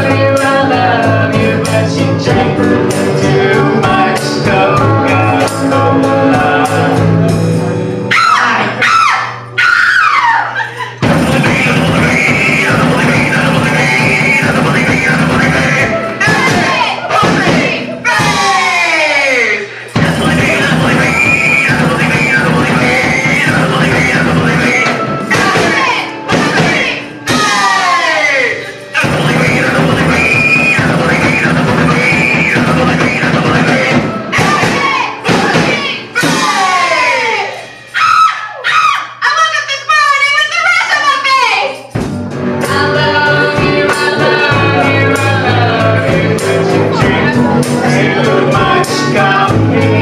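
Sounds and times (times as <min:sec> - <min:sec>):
punk rock band playing: 0:00.0 - 0:09.6, 0:10.7 - 0:19.0, 0:19.7 - 0:38.0, 0:41.9 - 0:50.0
person shouting vocal: 0:08.1 - 0:10.9.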